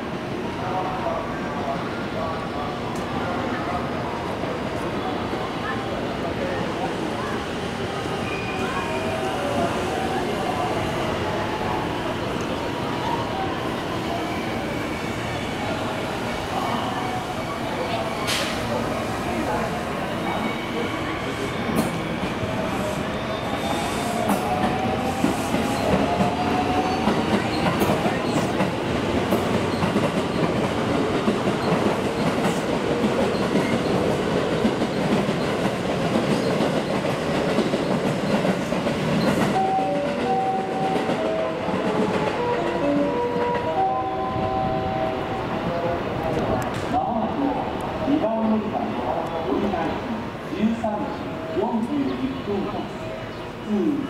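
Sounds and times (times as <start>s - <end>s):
train wheels on rails: 4.2s - 54.0s.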